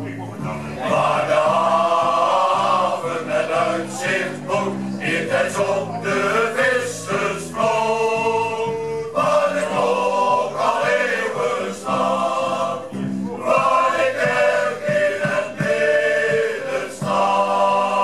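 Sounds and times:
guitar: 0.0s - 10.7s, 11.7s - 17.4s
drums: 0.0s - 18.0s
keyboard: 0.0s - 18.0s
accordion: 0.2s - 18.0s
male choir singing in harmony: 0.4s - 18.0s.

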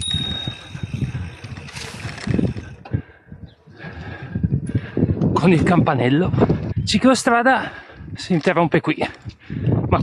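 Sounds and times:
bicycle bell ding: 0.0s - 1.6s
bicycle tyre noise: 0.0s - 5.2s
wind rush: 0.0s - 8.3s, 9.2s - 10.0s.

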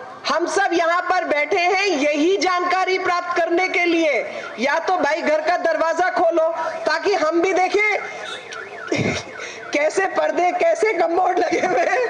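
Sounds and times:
warbling electronic alarm: 7.9s - 10.0s.

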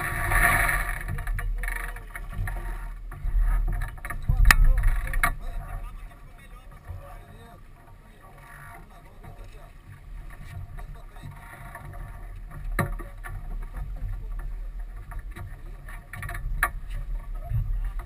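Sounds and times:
water along boat hull: 0.0s - 18.0s
wind rumbling on microphone: 0.0s - 18.0s.

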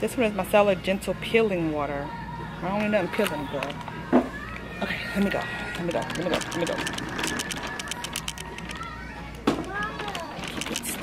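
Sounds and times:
shopping cart rattling: 5.2s - 11.0s.

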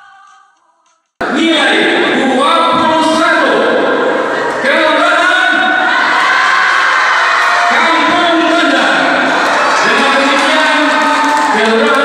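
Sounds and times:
crowd cheering and shouting: 1.2s - 12.0s.

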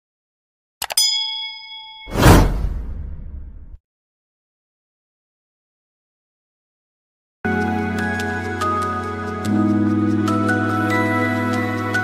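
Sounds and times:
bell-like notification ding: 0.9s - 2.4s
whoosh: 2.1s - 3.8s.

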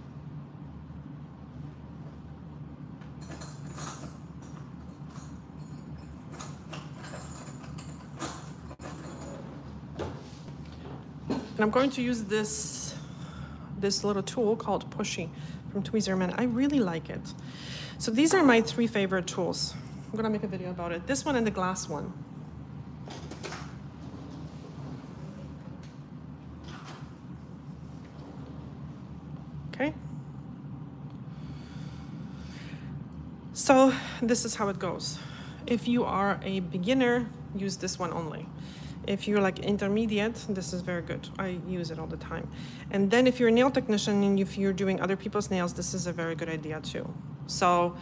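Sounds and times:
dust collector fan humming: 0.0s - 48.0s.

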